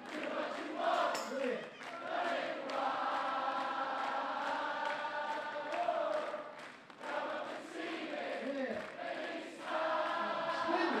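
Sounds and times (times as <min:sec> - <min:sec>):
audience singing along: 0:00.0 - 0:11.0.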